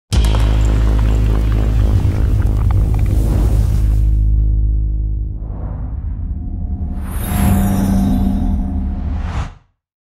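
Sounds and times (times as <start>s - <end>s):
deep bass rumble: 0.1s - 7.4s.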